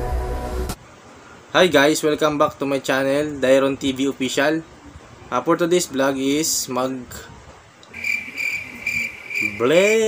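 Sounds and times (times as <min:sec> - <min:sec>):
cricket chirping: 0:07.9 - 0:10.0.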